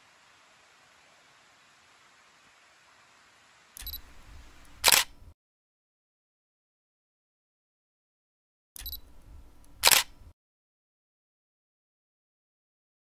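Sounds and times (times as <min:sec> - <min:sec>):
faint hiss: 0:00.0 - 0:05.3
sharp shutter snap: 0:03.8 - 0:04.0, 0:04.6 - 0:05.2, 0:09.7 - 0:10.3
camera shutter click: 0:03.8 - 0:05.2, 0:09.7 - 0:10.2.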